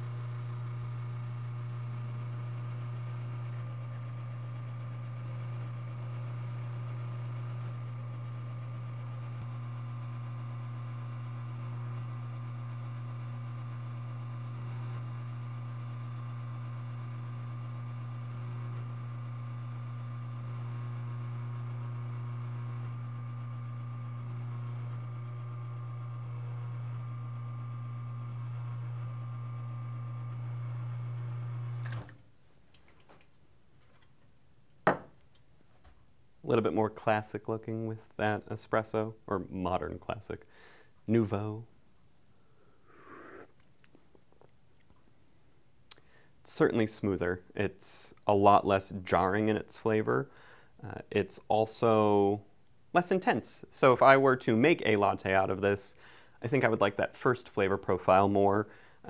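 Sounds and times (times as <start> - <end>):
espresso machine pump humming: 0.0 - 32.2.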